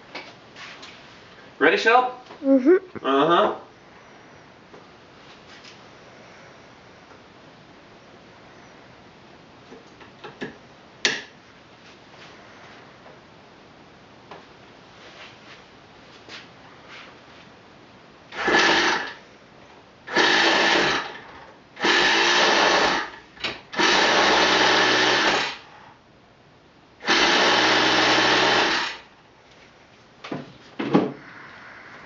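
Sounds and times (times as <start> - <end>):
electric starter cranking engine: 18.3 - 19.2, 20.1 - 25.7, 27.0 - 29.1.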